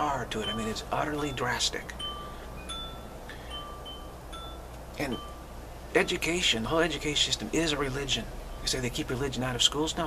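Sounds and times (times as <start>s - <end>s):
wind chimes ringing: 0.0s - 5.6s
low steady hum: 0.0s - 10.0s.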